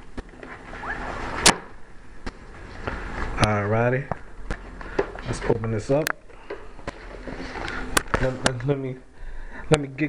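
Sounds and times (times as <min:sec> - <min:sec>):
sharp cardboard snap: 0:01.4 - 0:02.4.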